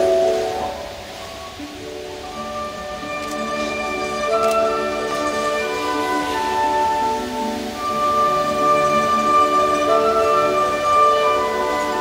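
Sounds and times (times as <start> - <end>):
instrumental music: 0.0 - 12.0.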